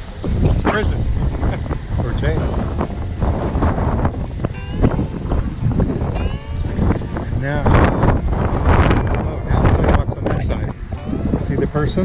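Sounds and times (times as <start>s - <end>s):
wind buffeting microphone: 0.0s - 12.0s
music: 0.2s - 12.0s.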